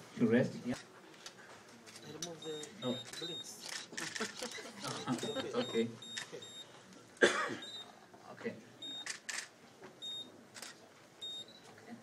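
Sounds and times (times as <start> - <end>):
short high electronic beeps: 2.4 - 3.5, 5.0 - 6.7
loud cough: 7.2 - 7.8.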